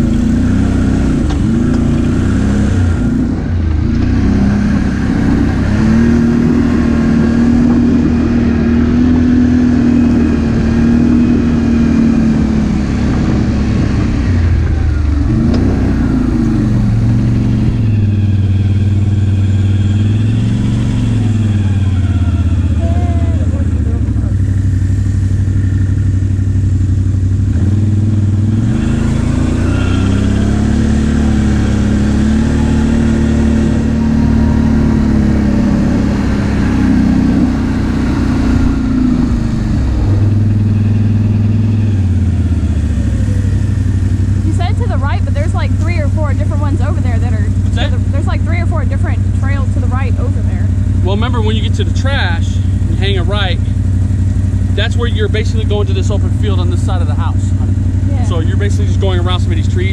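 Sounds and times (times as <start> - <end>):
atv engine revving: 0.0 - 59.9.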